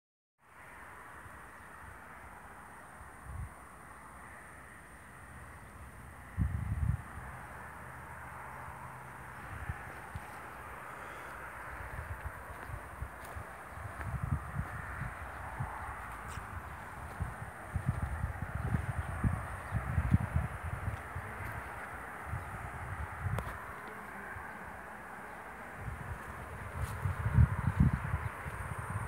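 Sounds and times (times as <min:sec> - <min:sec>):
honeybees humming: 0:01.5 - 0:29.0
wind thumps on microphone: 0:11.7 - 0:24.0, 0:25.8 - 0:29.0.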